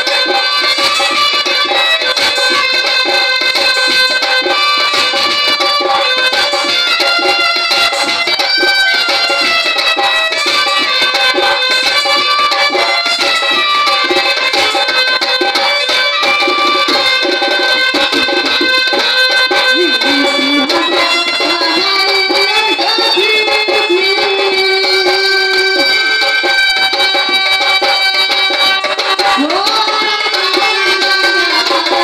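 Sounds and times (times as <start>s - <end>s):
hand drum beat: 0.0s - 32.0s
reed wind instrument melody: 0.0s - 32.0s.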